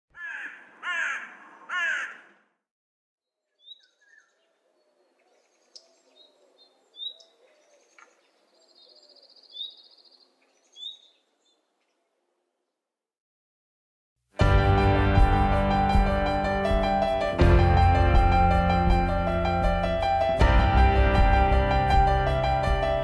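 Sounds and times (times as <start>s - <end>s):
bird cawing harshly: 0.1s - 2.5s
small birds chirping and trilling: 3.4s - 12.2s.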